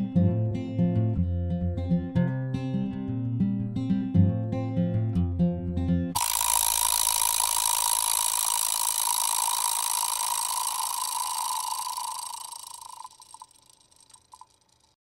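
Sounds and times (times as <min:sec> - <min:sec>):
clicks: 0:06.2 - 0:15.0
mechanical rattling whir: 0:06.2 - 0:15.0.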